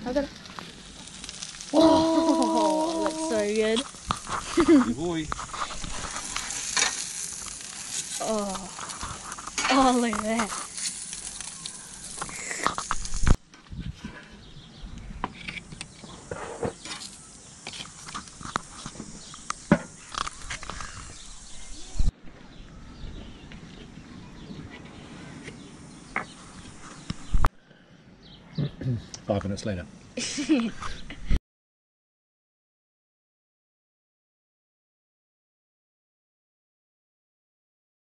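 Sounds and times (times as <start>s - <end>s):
food sizzling on a grill: 0.0s - 13.4s, 15.6s - 22.1s, 30.2s - 30.7s
faint voices: 1.7s - 3.8s.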